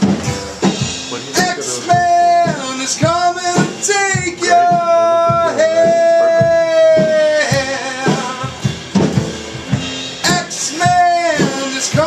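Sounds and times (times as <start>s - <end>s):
drums: 0.0s - 12.0s.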